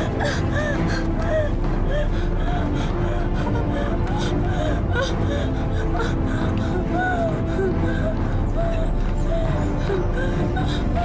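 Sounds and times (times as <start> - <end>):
music with long held notes: 0.0 - 11.0
person gasping and whimpering: 0.0 - 11.0.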